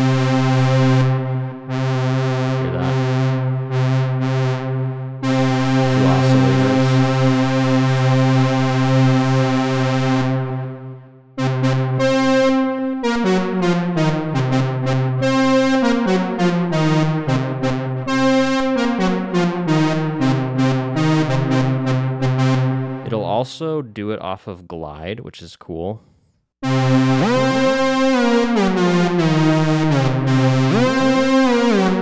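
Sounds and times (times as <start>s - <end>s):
buzzy synthesizer note: 0.0s - 23.3s, 26.6s - 32.0s
short synthesizer notes: 2.4s - 3.3s, 5.7s - 7.6s.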